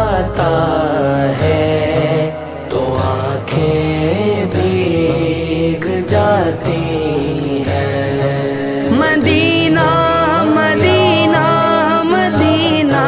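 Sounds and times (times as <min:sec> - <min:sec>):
layered wordless voices chanting: 0:00.0 - 0:13.0.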